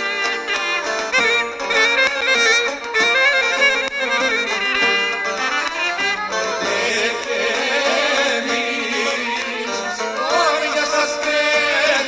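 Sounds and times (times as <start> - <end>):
clarinet melody: 0.0 - 7.1
folk band playing: 0.0 - 12.0
man singing: 6.6 - 12.0.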